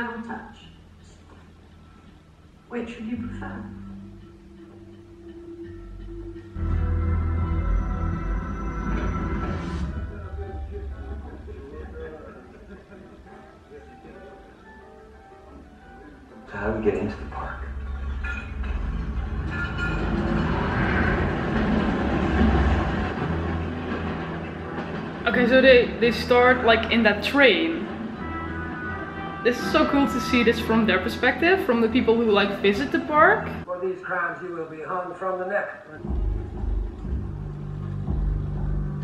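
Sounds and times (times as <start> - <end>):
train rumbling: 6.0 - 13.0, 17.2 - 33.7.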